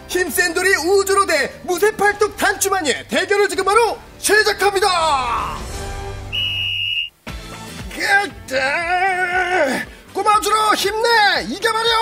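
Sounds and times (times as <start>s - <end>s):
background music: 0.0s - 12.0s
high whistle blast: 5.8s - 7.2s.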